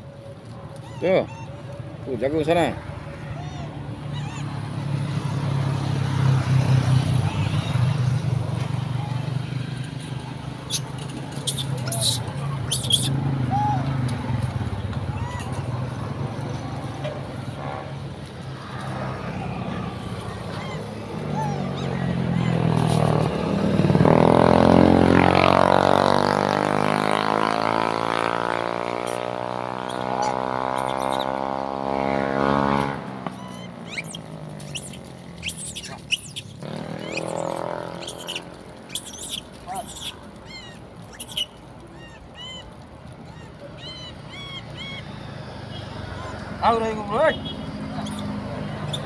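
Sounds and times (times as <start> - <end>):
vehicle engine droning: 0.0 - 49.0.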